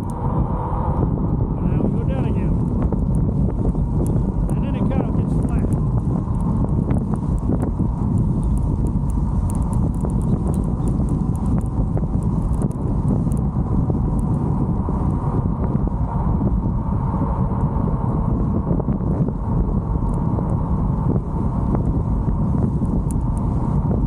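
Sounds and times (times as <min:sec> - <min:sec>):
tyre noise on asphalt: 0:00.0 - 0:24.0
wind rumbling on microphone: 0:00.0 - 0:24.0
sharp clicks: 0:04.0 - 0:13.4.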